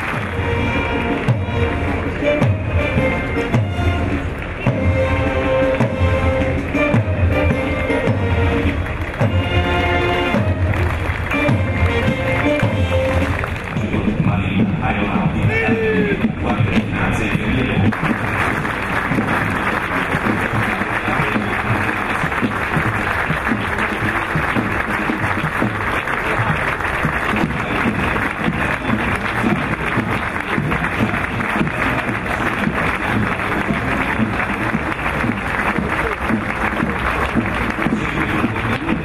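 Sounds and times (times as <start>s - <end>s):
crowd applause: 0.0s - 16.4s, 17.0s - 39.0s.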